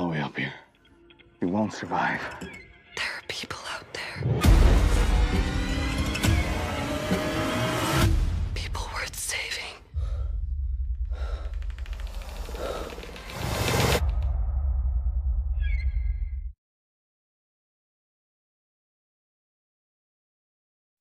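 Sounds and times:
tense trailer music with pulsing bass: 0.0 - 16.6.

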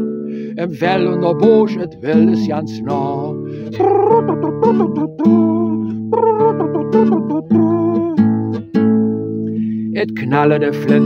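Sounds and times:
nylon-string guitar strumming: 0.0 - 11.0
person singing: 0.4 - 8.6, 9.9 - 11.0.

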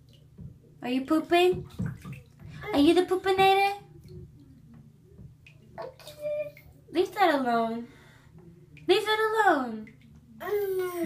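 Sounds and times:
faint low hum: 0.0 - 11.0
toddler high-pitched vocal sound: 10.4 - 11.0.

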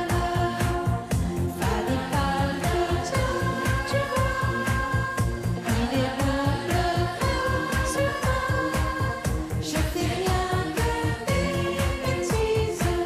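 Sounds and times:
children's choir singing: 0.0 - 1.0, 1.6 - 13.0
backing track with steady beat: 0.0 - 13.0.

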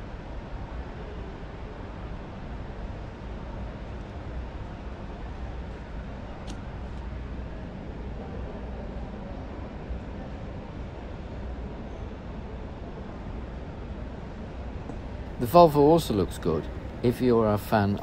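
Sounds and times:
low hum: 14.3 - 18.0
distant noise: 14.9 - 18.0.

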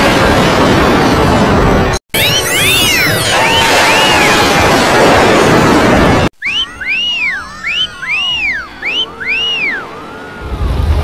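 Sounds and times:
whistle-like pitch sweeps: 6.4 - 10.9.

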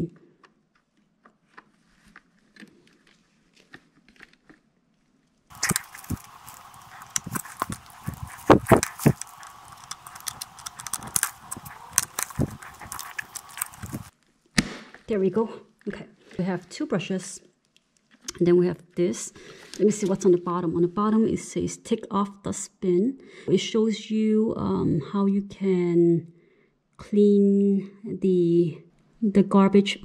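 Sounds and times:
steady hiss: 5.5 - 14.1.

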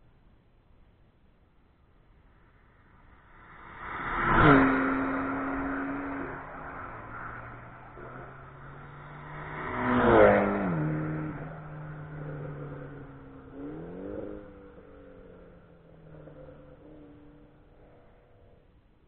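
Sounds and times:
race car passing by: 2.4 - 18.6.

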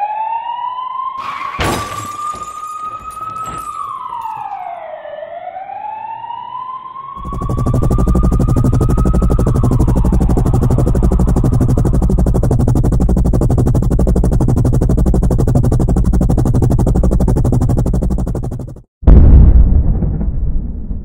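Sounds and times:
police siren: 0.0 - 18.7
helicopter rotor chopping: 7.2 - 18.9.

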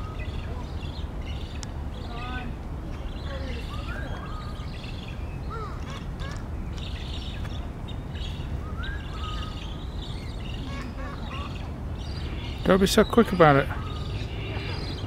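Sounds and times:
whistled gliding bird calls: 0.0 - 2.2, 3.0 - 15.0
birds chirping: 0.0 - 15.0.

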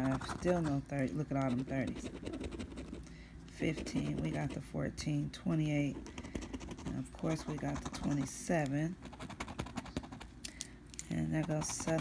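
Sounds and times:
plastic tool scraping ticket: 0.0 - 2.9, 6.0 - 10.3, 11.3 - 12.0.

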